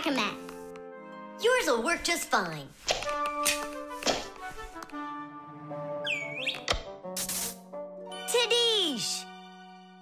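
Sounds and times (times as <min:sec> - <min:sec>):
background music: 0:00.0 - 0:10.0
cartoon swooping pitch glide: 0:06.0 - 0:06.7.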